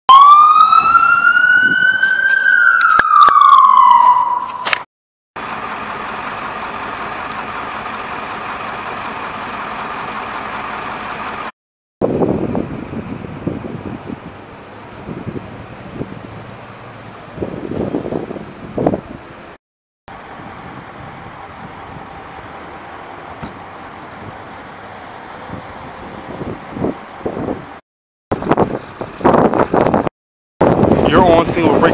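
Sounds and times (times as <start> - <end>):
emergency vehicle siren wailing: 0.1 - 11.5, 20.1 - 27.8
street noise: 0.1 - 31.9.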